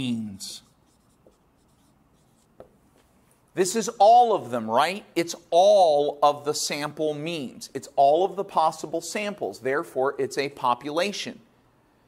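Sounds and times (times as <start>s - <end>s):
marker writing on a whiteboard: 0.0s - 3.1s.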